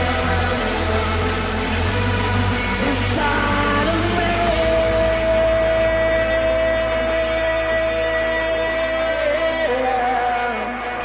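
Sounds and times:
sustained bass: 0.0 - 11.0.

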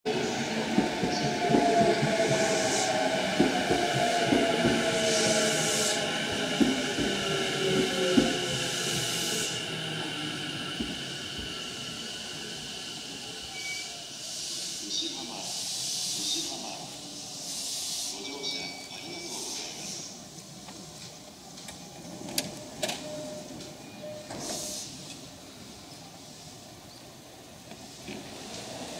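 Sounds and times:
train wheels knocking: 3.3 - 5.2, 6.4 - 8.7.

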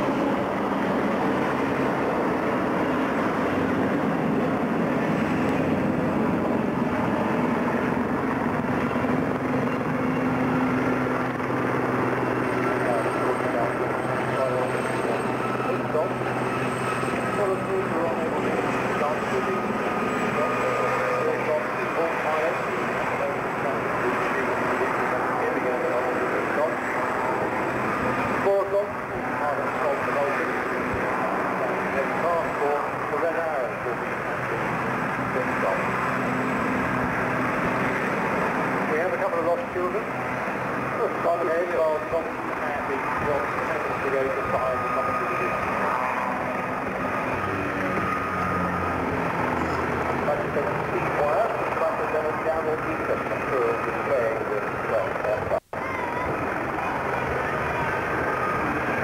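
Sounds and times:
biplane engine running: 0.0 - 59.0.

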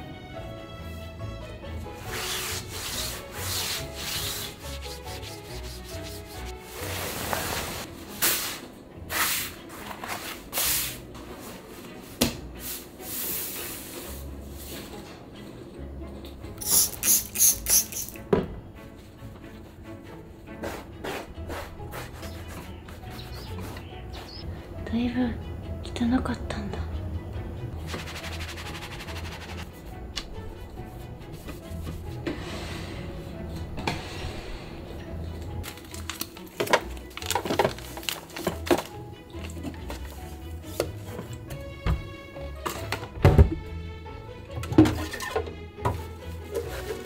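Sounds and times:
fabric rubbing and swishing: 2.0 - 15.0.

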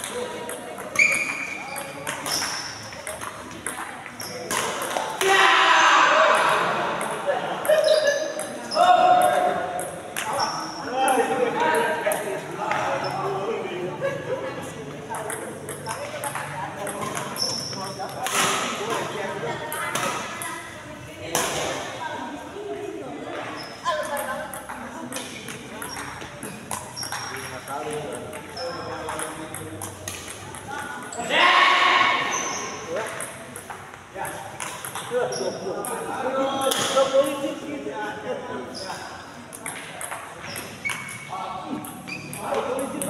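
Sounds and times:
shoes squeaking on court: 0.0 - 5.1, 7.6 - 9.0, 10.2 - 10.9, 12.8 - 13.3, 15.7 - 18.2, 23.2 - 24.3, 25.0 - 29.4, 32.2 - 35.7, 38.6 - 42.8
rackets hitting shuttlecock: 0.0 - 5.4, 6.2 - 10.6, 15.2 - 19.1, 19.7 - 20.5, 24.1 - 30.9, 33.0 - 35.2, 39.5 - 43.0
voices echoing in hall: 0.0 - 43.0.

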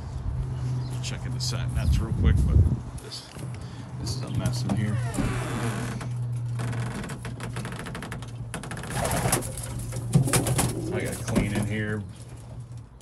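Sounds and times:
sharp knocks and rattles: 6.0 - 13.0
pigeons cooing: 8.9 - 11.9.

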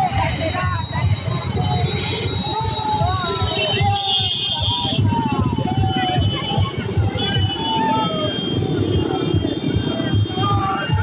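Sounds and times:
motorcycle engines running: 0.0 - 11.0
voices calling out: 0.0 - 11.0.

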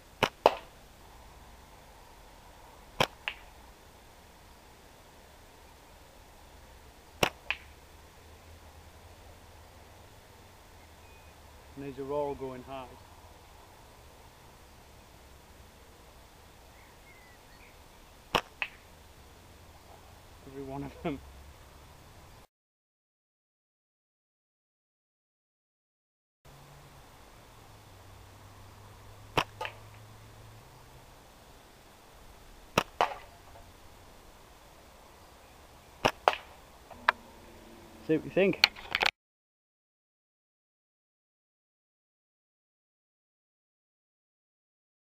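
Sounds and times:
slingshot rubber bands snapping: 0.2 - 0.7, 3.0 - 3.5, 7.2 - 7.7, 18.3 - 18.8, 29.4 - 29.8, 32.7 - 33.3, 36.0 - 36.5
ball striking target: 18.3 - 18.8.

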